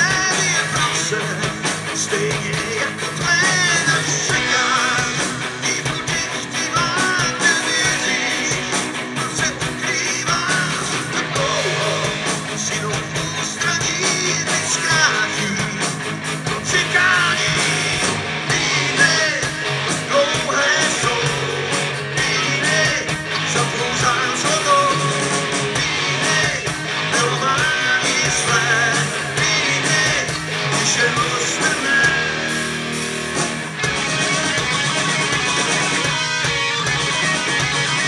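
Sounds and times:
person singing: 0.0s - 32.6s
bass guitar: 0.0s - 38.0s
drums: 0.0s - 38.0s
electric guitars: 0.0s - 38.0s.

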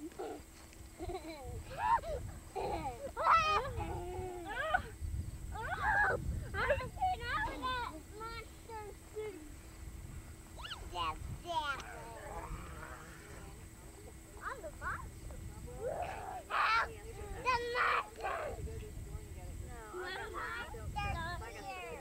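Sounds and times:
children shouting and squealing: 1.5s - 8.8s, 10.6s - 13.5s, 15.8s - 18.6s.

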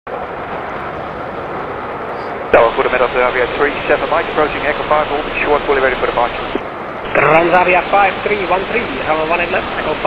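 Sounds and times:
jet engine rushing: 0.1s - 10.0s.

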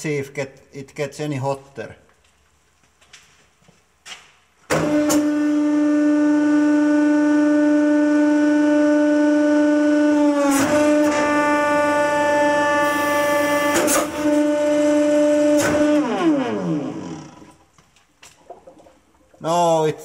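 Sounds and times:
hydraulic pump droning: 4.7s - 17.7s.

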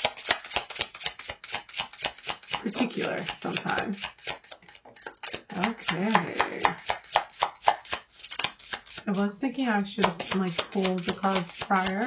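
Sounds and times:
cards being shuffled: 0.0s - 9.0s, 10.0s - 12.0s.

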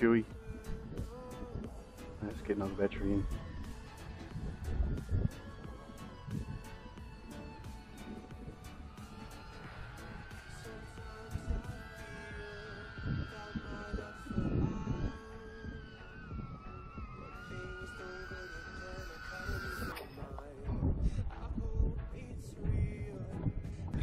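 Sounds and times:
wind rumble on microphone: 0.0s - 24.0s
quadcopter propellers whining: 7.0s - 20.0s.

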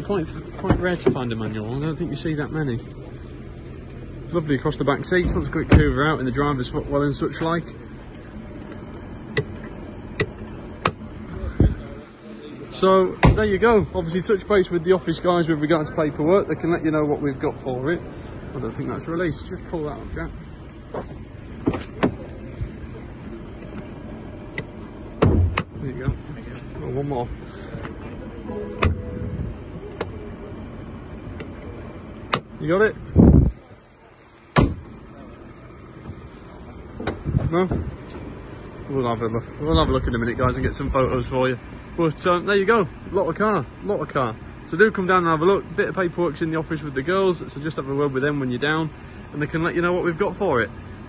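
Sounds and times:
sharp car catch clunk: 24.6s - 25.8s, 28.5s - 29.3s, 34.5s - 34.9s.

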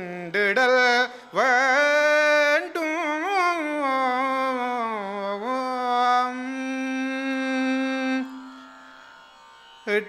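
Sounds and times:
man singing into a microphone: 0.0s - 8.5s.

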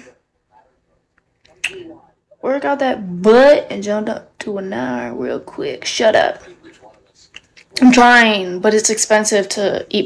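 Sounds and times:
woman speaking: 2.4s - 6.5s, 7.7s - 10.0s.

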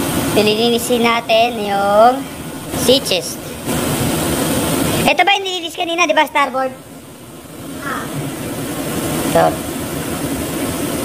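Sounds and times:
machinery and ventilation drone: 0.0s - 11.0s.

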